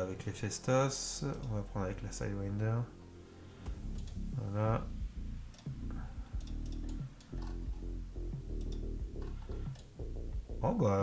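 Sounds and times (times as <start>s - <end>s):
background music with low chords: 0.0s - 11.0s
computer mouse clicks: 3.9s - 4.2s, 5.5s - 7.9s, 8.5s - 10.0s.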